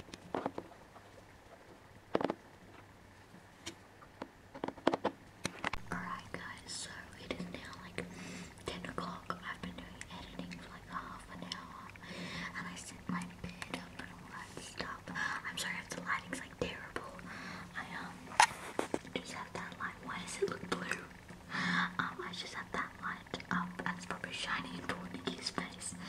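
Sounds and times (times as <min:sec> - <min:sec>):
steady low hum: 0:00.0 - 0:26.0
person whispering: 0:05.8 - 0:18.2, 0:19.0 - 0:21.1, 0:21.8 - 0:26.0.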